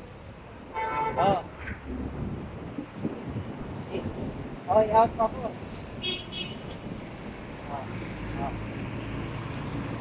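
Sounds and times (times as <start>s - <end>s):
city traffic hum: 0.0s - 10.0s.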